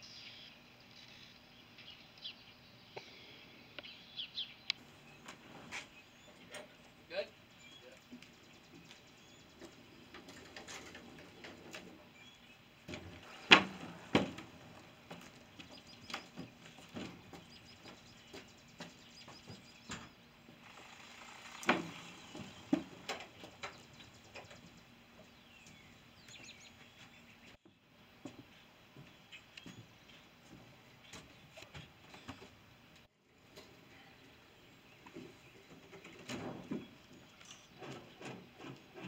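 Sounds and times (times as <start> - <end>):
birds chirping faintly: 0.0 - 39.0
trailer ramp door lowered: 12.9 - 15.0
footsteps on wooden ramp: 12.9 - 19.6, 25.2 - 32.5.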